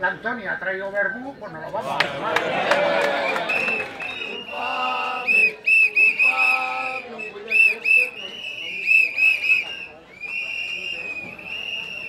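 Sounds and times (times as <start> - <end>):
crowd voices: 1.3 - 12.0
shrill whistle blasts: 3.3 - 12.0.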